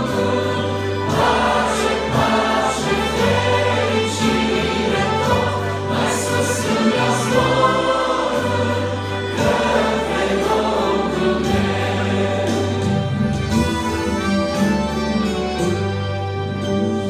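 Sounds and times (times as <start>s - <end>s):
group singing a hymn: 0.0s - 13.6s
accordion: 0.0s - 17.0s
trumpet: 0.0s - 17.0s.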